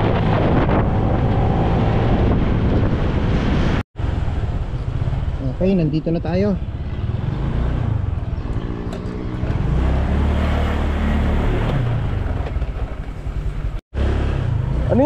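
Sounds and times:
road noise: 0.0s - 15.0s
wind: 0.0s - 15.0s.

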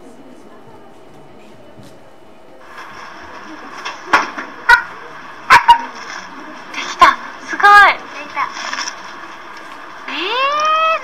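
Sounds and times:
paper party blower tone: 2.6s - 11.0s.

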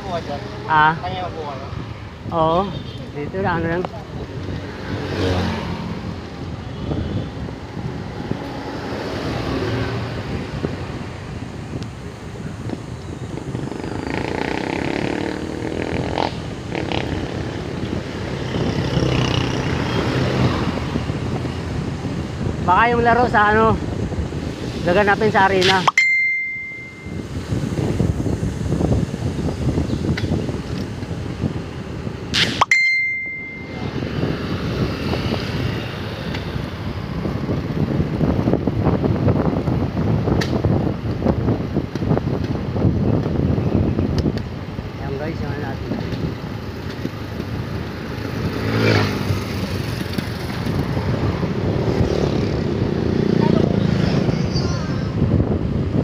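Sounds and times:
wind buffeting microphone: 0.0s - 25.7s, 27.1s - 32.4s, 33.6s - 56.0s
sharp click with high ding: 25.6s - 27.2s, 32.4s - 34.0s.

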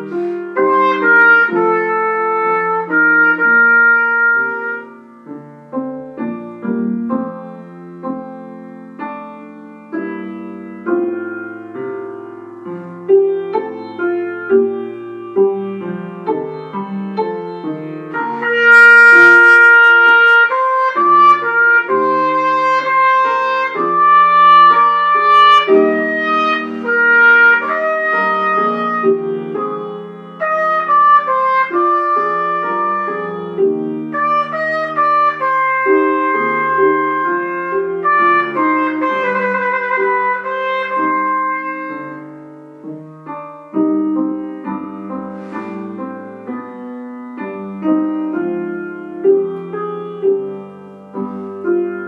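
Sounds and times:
trumpet melody: 0.0s - 7.2s, 9.5s - 52.0s
grand piano accompaniment: 0.0s - 52.0s.

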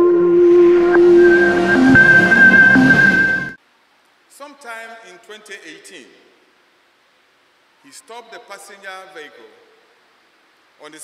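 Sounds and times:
synthesized held tones: 0.0s - 3.6s.

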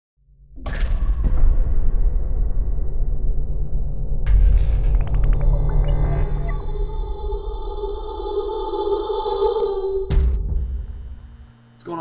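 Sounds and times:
deep rumble: 0.7s - 11.6s.

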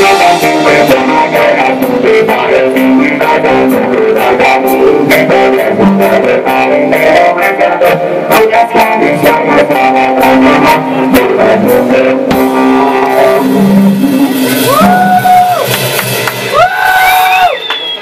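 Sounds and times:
electric guitar chords: 0.0s - 16.8s
rock band playing live: 0.0s - 17.5s.

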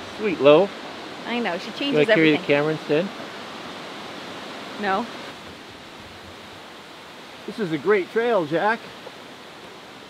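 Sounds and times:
waterfall rushing: 0.0s - 10.0s.

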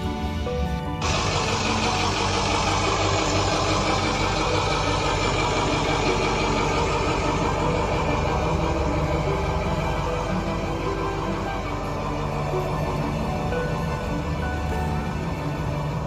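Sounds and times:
loud mechanical running noise: 0.0s - 16.0s.

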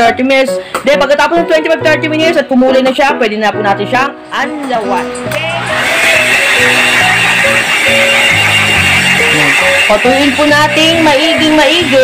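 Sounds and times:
background music: 0.0s - 12.0s
hair dryer whining: 5.3s - 12.0s.

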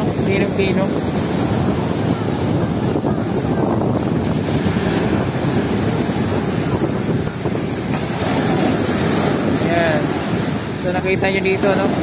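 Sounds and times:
waves breaking on sandy shore: 0.0s - 12.0s
wind buffeting microphone: 0.0s - 12.0s.

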